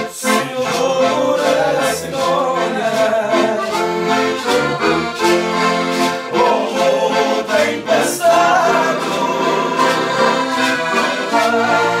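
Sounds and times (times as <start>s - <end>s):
people singing along: 0.0s - 4.7s, 6.0s - 12.0s
accordions playing dance tune: 0.0s - 12.0s.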